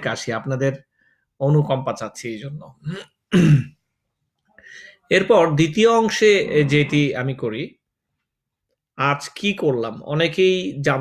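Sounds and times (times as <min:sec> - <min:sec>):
man clearing his throat: 0:02.8 - 0:03.8.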